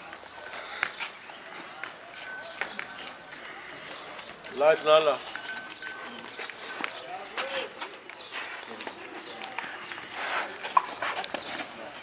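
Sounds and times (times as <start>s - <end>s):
birds calling: 0.0s - 10.1s.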